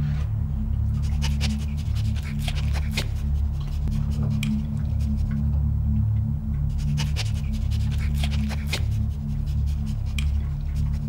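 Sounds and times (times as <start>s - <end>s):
low music drone: 0.0s - 11.0s
dog panting: 0.9s - 5.4s, 6.7s - 11.0s.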